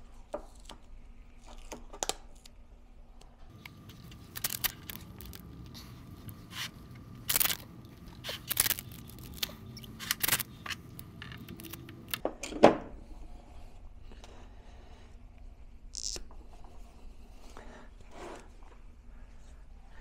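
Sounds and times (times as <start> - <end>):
packing tape ripping off roll: 3.9 - 5.9, 6.5 - 10.7, 11.3 - 12.2.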